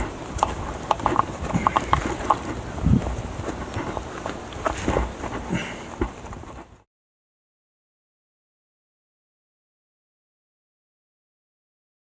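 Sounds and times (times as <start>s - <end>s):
hands and feet on rock: 0.0s - 6.8s.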